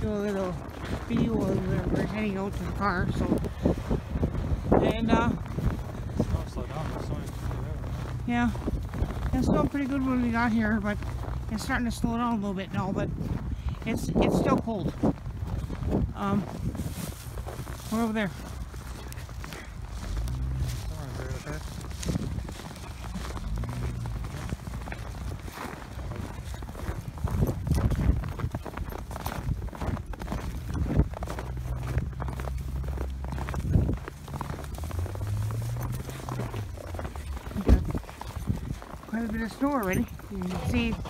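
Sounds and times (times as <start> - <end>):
footsteps crunching in snow: 0.0 - 41.0
low microphone rumble: 0.0 - 41.0.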